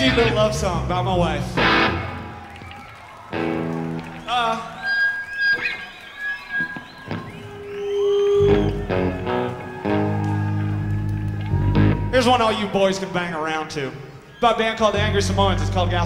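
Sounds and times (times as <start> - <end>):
electric guitar chords ringing: 0.0 - 2.3, 8.4 - 12.2
high wavering whistles: 4.6 - 9.0.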